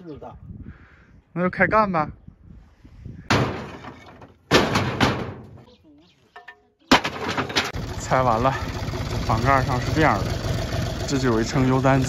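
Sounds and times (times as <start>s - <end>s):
roof tiles crashing and clattering: 3.3s - 5.6s, 6.4s - 7.8s.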